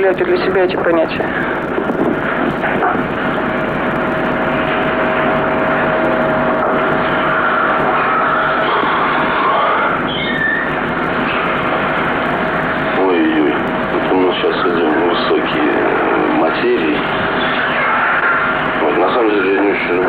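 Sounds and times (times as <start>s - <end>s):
constant mid-pitched machine hum: 0.0s - 20.0s.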